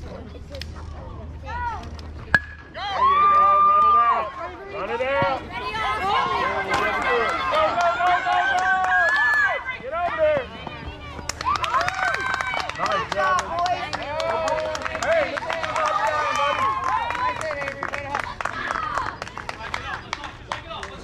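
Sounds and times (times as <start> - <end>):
bat hitting ball: 2.3 - 2.8
crowd shouting and cheering: 2.4 - 19.2.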